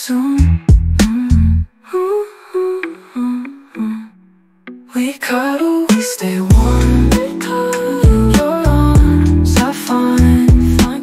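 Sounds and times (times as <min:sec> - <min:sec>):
wordless humming vocal: 0:00.0 - 0:04.2, 0:04.9 - 0:11.0
pop love song: 0:00.0 - 0:11.0.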